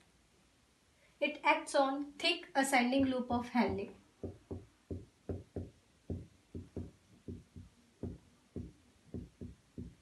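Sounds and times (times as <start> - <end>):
marker knocking on whiteboard: 3.0 - 10.0.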